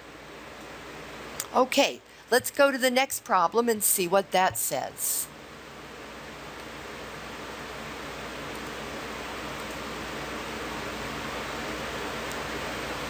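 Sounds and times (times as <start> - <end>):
microphone hiss: 0.0 - 13.0.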